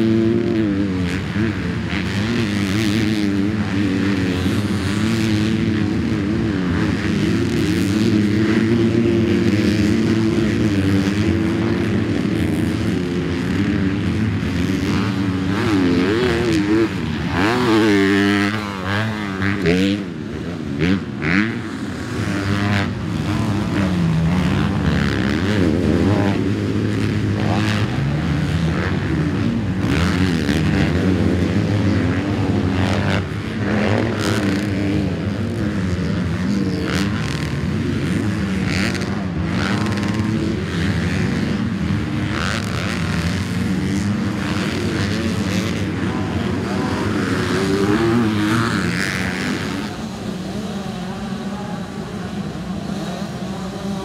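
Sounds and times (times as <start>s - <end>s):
motocross bikes revving: 0.0s - 54.0s
motorbikes passing close by: 0.0s - 54.0s.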